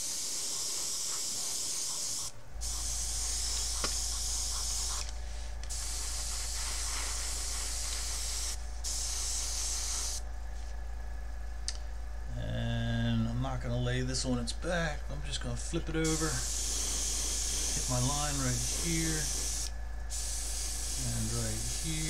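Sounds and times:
airbrush spraying hiss: 0:00.0 - 0:10.2, 0:15.9 - 0:22.0
low steady hum: 0:00.0 - 0:22.0.

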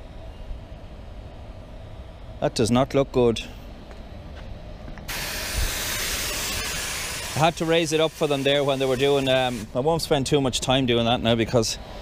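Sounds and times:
compressed air hissing: 0:05.1 - 0:09.8.

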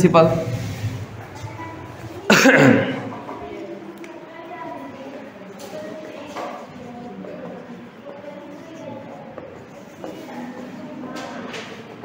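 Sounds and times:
loud cough: 0:02.2 - 0:03.2.

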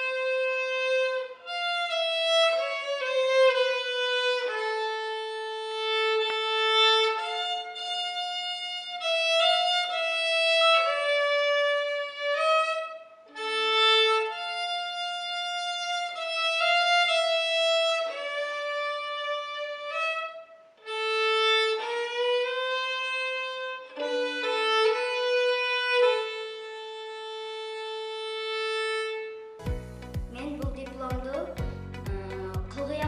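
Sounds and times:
bowed string instrument melody: 0:00.0 - 0:33.0
low regular beat: 0:29.6 - 0:33.0.

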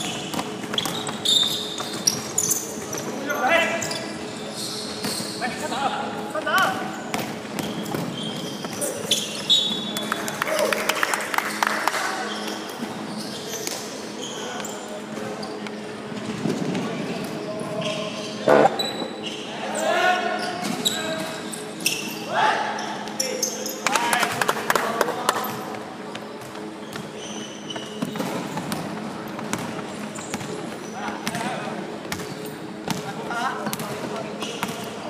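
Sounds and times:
sneakers squeaking: 0:00.0 - 0:10.1, 0:12.2 - 0:15.9, 0:17.2 - 0:23.8, 0:26.2 - 0:35.0.

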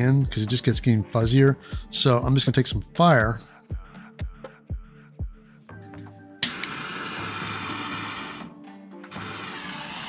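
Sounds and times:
background music: 0:00.0 - 0:10.0
propane torch lighting click: 0:06.4 - 0:06.8.

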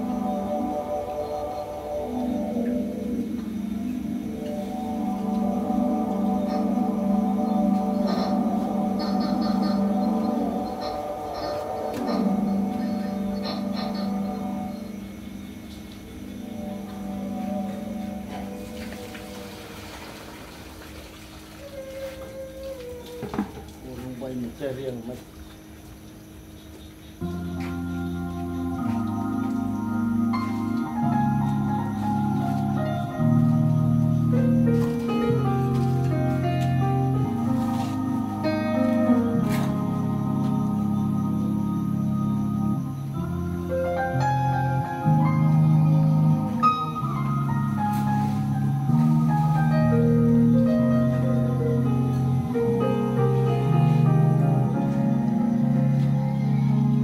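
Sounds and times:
background music: 0:00.0 - 0:20.7, 0:27.0 - 0:57.0
faint steady hum: 0:00.0 - 0:57.0.

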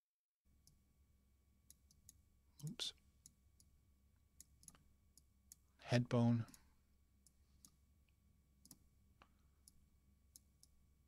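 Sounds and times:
computer mouse clicks: 0:04.4 - 0:05.6, 0:08.6 - 0:08.8.

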